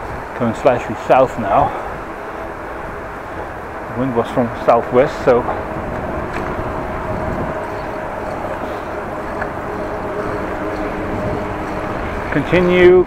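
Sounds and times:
faint steady hum: 0:00.0 - 0:13.0
wind rushing over microphone: 0:00.0 - 0:13.0.

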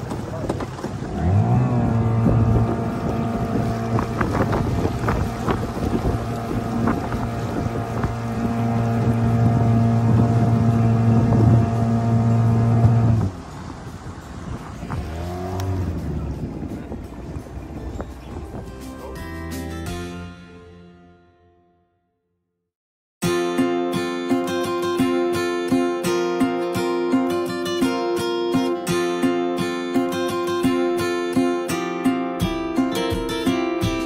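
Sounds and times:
outboard motor running: 0:00.0 - 0:18.4
water noise: 0:00.0 - 0:19.2
wind: 0:00.0 - 0:20.9, 0:23.2 - 0:34.0.

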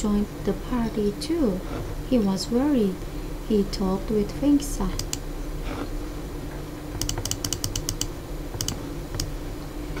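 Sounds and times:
computer mouse clicks: 0:05.0 - 0:05.2, 0:07.0 - 0:09.3.

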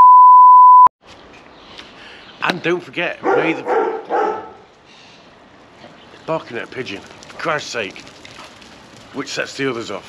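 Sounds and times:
censor bleep tone: 0:00.0 - 0:00.9.

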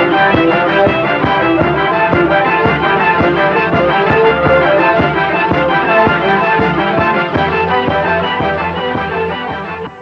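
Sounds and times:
film score music with steady beat: 0:00.0 - 0:10.0.

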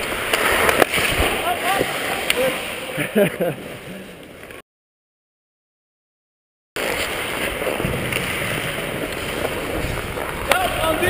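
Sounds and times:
hockey sticks and puck clicks: 0:00.0 - 0:02.6, 0:06.8 - 0:11.0
skate blades scraping ice: 0:00.0 - 0:04.6, 0:06.8 - 0:11.0.

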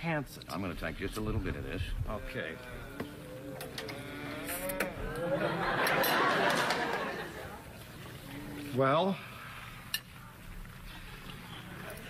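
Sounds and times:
person humming mmm: 0:02.6 - 0:05.2
studio audience laughter: 0:05.0 - 0:07.7.

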